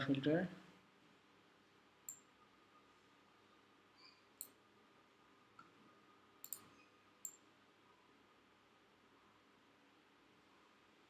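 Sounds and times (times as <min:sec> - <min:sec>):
faint room hiss: 0:00.0 - 0:11.0
computer mouse clicking: 0:06.4 - 0:07.4.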